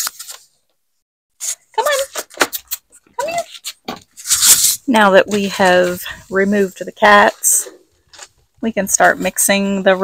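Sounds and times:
rustling: 1.4 - 10.0.

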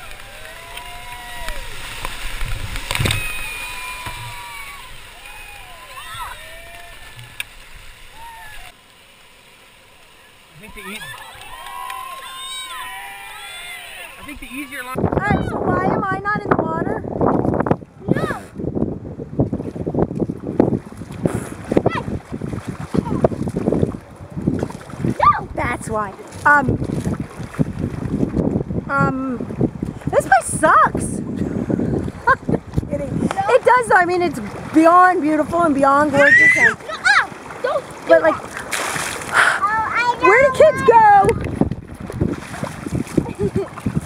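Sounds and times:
wind buffeting microphone: 0.0 - 8.7, 14.0 - 44.0
loud water splash: 0.0 - 15.0, 19.6 - 28.4, 36.1 - 44.0
whitewater rapids rushing: 0.0 - 15.0, 33.3 - 41.2
child's high call: 5.6 - 6.7, 12.0 - 14.1.

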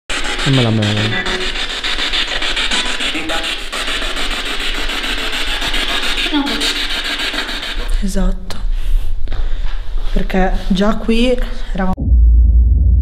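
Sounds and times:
faint voice snatches: 0.4 - 1.4
radio static hiss: 0.4 - 1.4.

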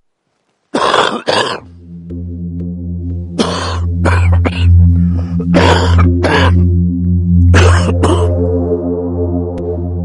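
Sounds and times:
loud coughs: 0.8 - 1.7, 3.4 - 4.7, 5.5 - 6.6, 7.5 - 8.3
low music drone: 0.8 - 10.0.

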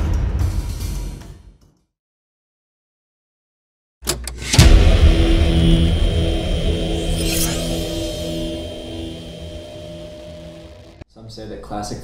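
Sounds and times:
whoosh: 4.5 - 11.0
heavy low boom: 4.6 - 11.0
low droning tone: 4.6 - 11.0.

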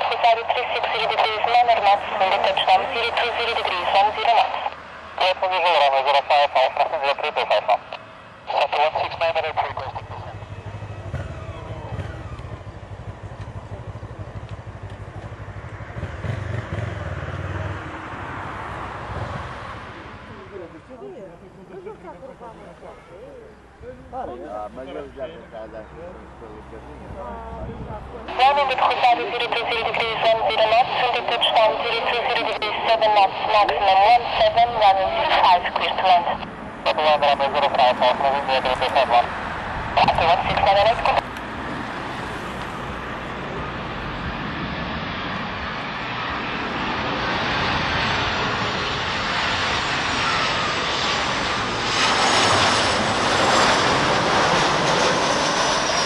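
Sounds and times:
man talking over radio: 0.0 - 10.7, 20.1 - 41.3, 46.2 - 56.0.

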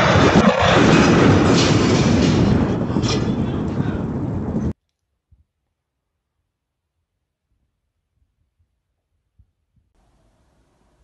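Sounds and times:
explosion rumbling roar: 0.0 - 4.8.

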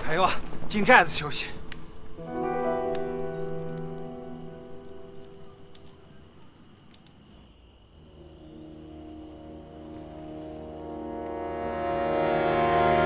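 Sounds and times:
faint cricket chirring: 0.0 - 13.0
low orchestral drone: 1.6 - 6.2, 8.0 - 13.0.

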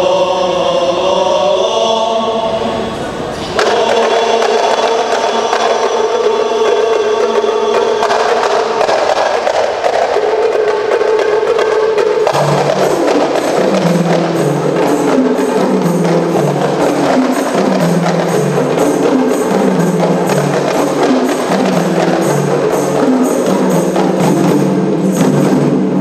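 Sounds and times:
men singing a held chord: 3.6 - 8.5
frame drums beating rapidly: 3.6 - 26.0.

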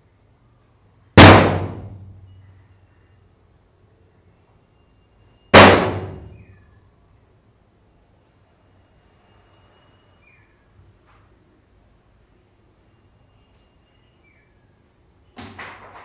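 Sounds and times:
loud ringing bangs: 1.2 - 2.3, 5.5 - 6.5.

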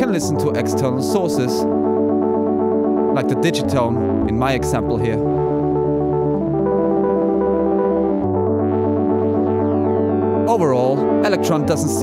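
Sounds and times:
synthesizer chords with bass: 0.0 - 12.0.

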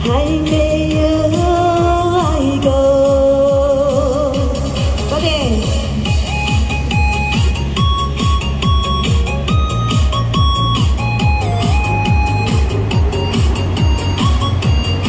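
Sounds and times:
electronic dance beat: 0.0 - 15.0
synth melody: 5.9 - 15.0.

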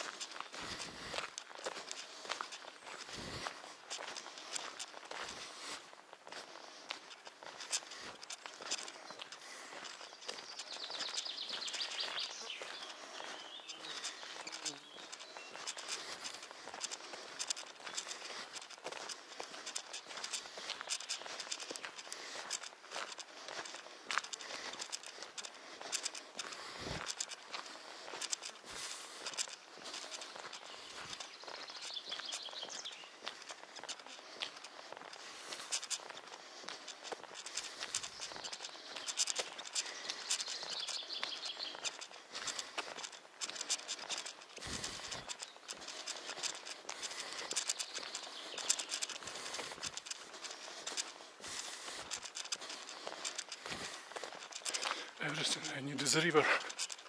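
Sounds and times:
footsteps on asphalt: 0.0 - 57.0
small birds chirping: 0.0 - 57.0.

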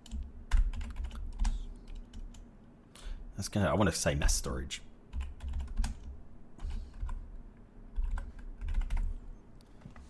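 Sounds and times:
typing on computer keyboard: 0.0 - 2.4, 5.1 - 7.2, 7.9 - 9.1.

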